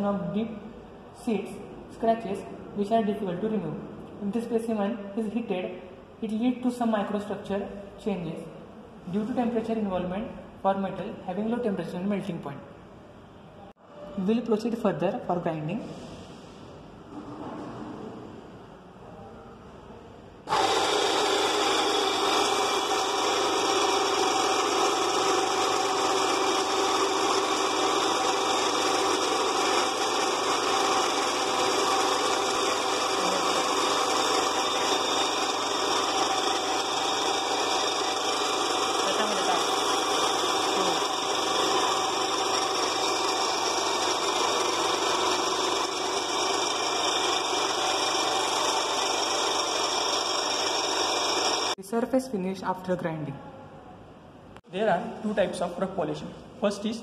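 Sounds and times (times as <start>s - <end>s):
electric belt grinder running: 20.5s - 51.8s.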